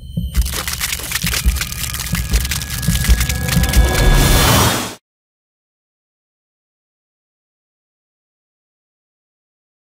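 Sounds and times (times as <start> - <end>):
low rumble: 0.0 - 5.0.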